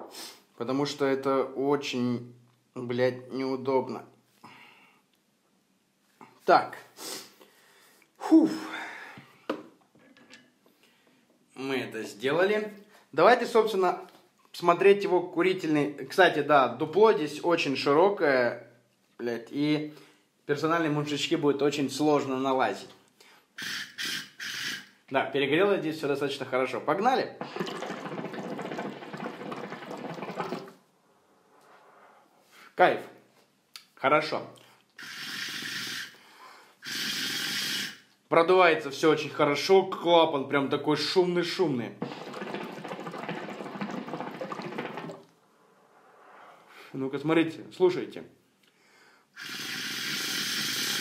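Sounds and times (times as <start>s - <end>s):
breathy air rushes through hose: 23.6s - 25.0s, 35.0s - 38.1s, 42.0s - 47.0s, 49.2s - 51.0s
hookah water bubbling: 27.4s - 30.8s, 35.0s - 36.1s, 36.8s - 37.9s, 42.0s - 45.4s, 49.4s - 51.0s.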